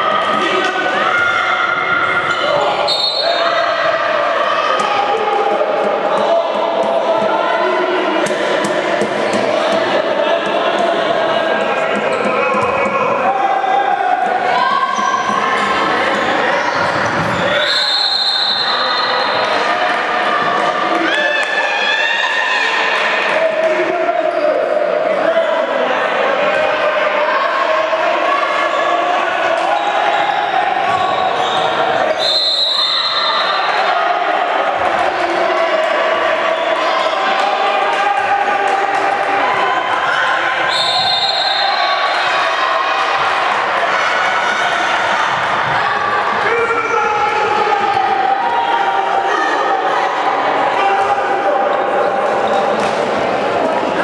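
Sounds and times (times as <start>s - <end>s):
voices echoing in hall: 0.0s - 54.0s.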